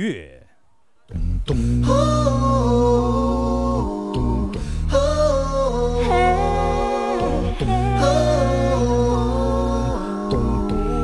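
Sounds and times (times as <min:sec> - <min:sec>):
woman singing wordless vocalise: 0:01.1 - 0:11.0.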